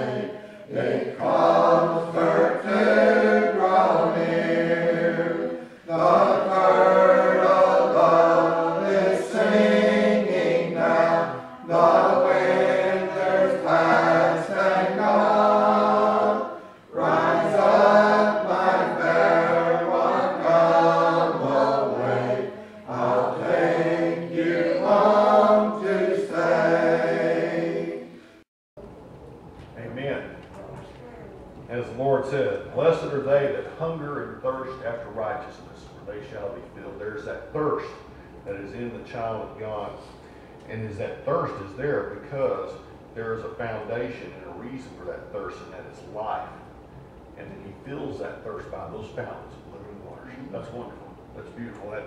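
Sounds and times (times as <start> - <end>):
congregation singing a hymn: 0.0 - 28.3.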